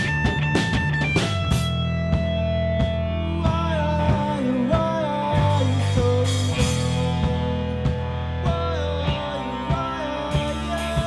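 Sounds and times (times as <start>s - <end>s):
rock band playing: 0.0s - 11.0s
person singing: 3.0s - 11.0s.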